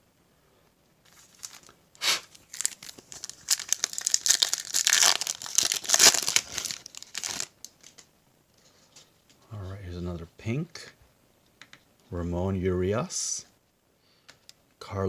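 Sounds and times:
foil wrapper tearing and crinkling: 0:01.1 - 0:07.9.

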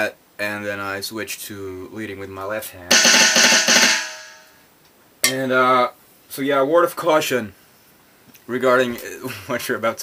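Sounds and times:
electronic snare roll: 0:02.9 - 0:04.5.

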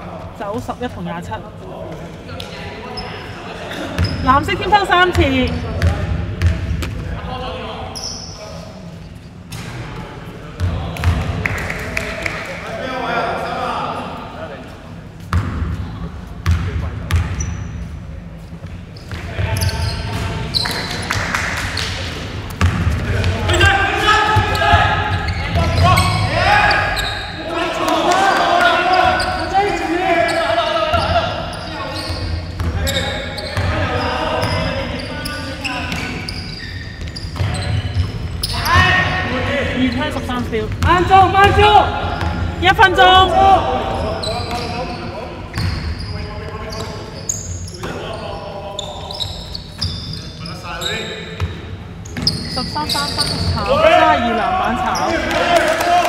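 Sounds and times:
players calling out: 0:22.9 - 0:50.2, 0:52.2 - 0:56.0.

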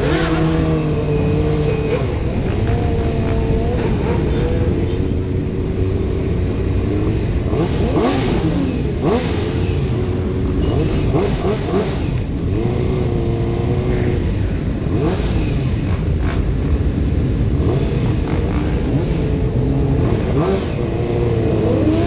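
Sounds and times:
engine revving: 0:00.0 - 0:22.0
motorcycle engines: 0:00.0 - 0:22.0.

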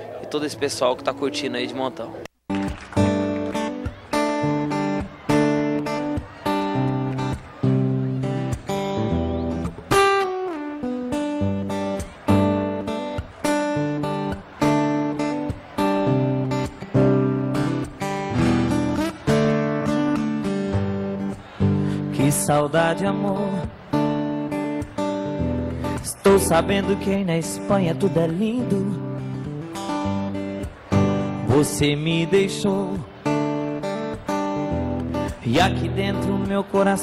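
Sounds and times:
acoustic guitar strumming chords: 0:02.5 - 0:37.0.

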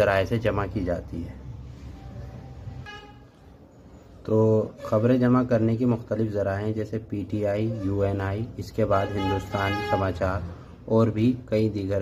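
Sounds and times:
faint vehicle horn toot: 0:02.8 - 0:03.5, 0:08.9 - 0:10.2.

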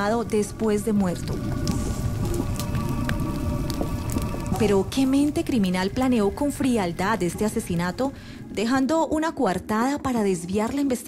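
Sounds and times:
sustained music drone: 0:00.0 - 0:08.6
fire crackling and popping: 0:00.0 - 0:11.0.

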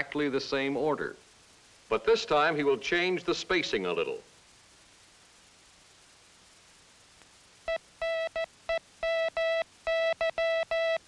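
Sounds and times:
morse code tone: 0:07.7 - 0:11.0.

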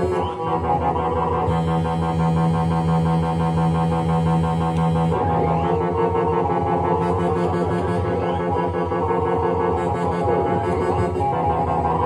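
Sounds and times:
buzzy synthesizer tone: 0:00.0 - 0:12.0
fast pulsing synth bass: 0:00.0 - 0:12.0.

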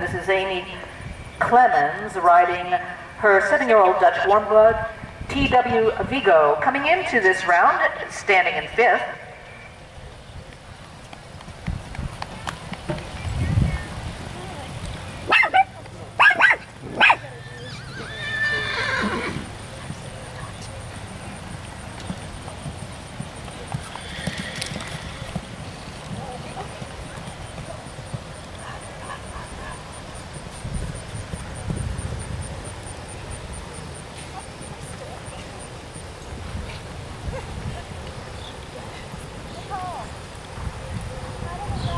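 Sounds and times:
muffled hoofbeats on sand: 0:10.2 - 0:14.8, 0:19.4 - 0:32.9
horse whinnying: 0:17.3 - 0:19.5, 0:23.8 - 0:25.4.

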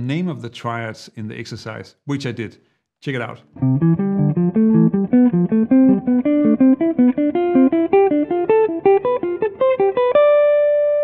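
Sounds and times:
jazz guitar arpeggios: 0:03.6 - 0:11.0.

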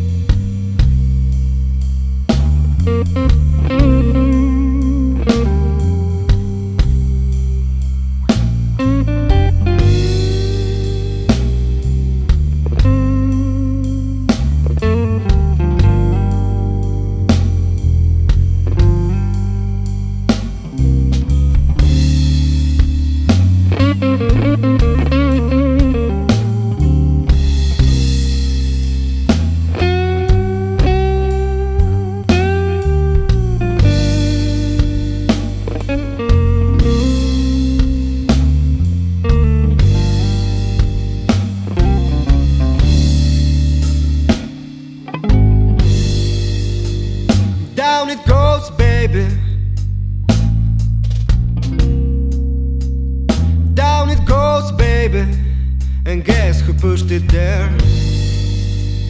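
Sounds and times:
bass guitar line: 0:00.0 - 0:59.0
lead guitar: 0:00.0 - 0:59.0
drum hits: 0:02.8 - 0:04.4, 0:06.3 - 0:07.3, 0:09.3 - 0:10.6, 0:12.3 - 0:13.2, 0:20.3 - 0:26.4, 0:39.3 - 0:49.4.

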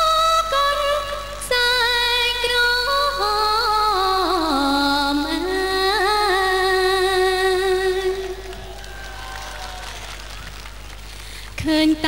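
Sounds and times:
low tape hum: 0:00.0 - 0:12.0
scattered crowd applause: 0:08.0 - 0:11.7.

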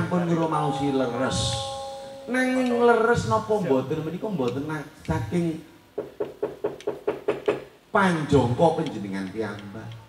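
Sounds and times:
metal plates ringing: 0:00.0 - 0:03.9.

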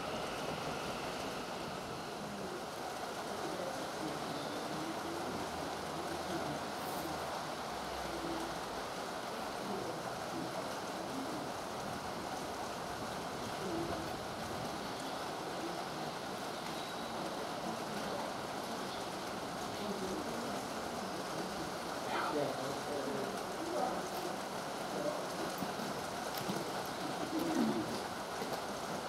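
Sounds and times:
rain falling: 0:00.0 - 0:29.0.

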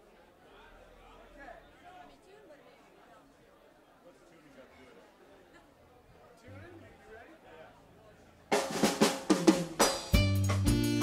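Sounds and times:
drum fill: 0:08.5 - 0:11.0
funk jazz band playing: 0:08.5 - 0:11.0.

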